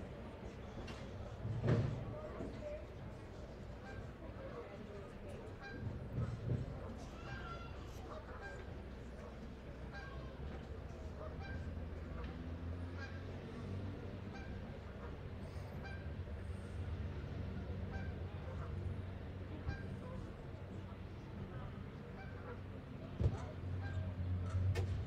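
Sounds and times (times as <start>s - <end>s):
murmur of outdoor crowd: 0.0s - 25.0s
thump: 1.5s - 2.1s
geese honking: 11.2s - 12.2s, 14.2s - 15.2s, 17.6s - 19.0s, 21.6s - 22.7s, 23.4s - 24.6s.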